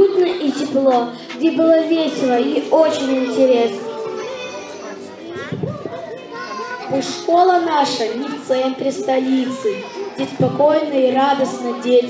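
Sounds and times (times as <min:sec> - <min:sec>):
boy speaking into a microphone: 0:00.0 - 0:12.0
children chattering: 0:00.0 - 0:12.0.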